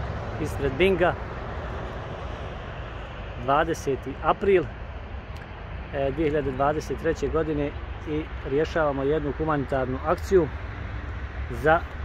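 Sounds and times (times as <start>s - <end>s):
distant traffic rumble: 0.0s - 12.0s
man speaking: 0.4s - 1.2s, 3.4s - 4.7s, 5.9s - 10.6s, 11.5s - 11.9s.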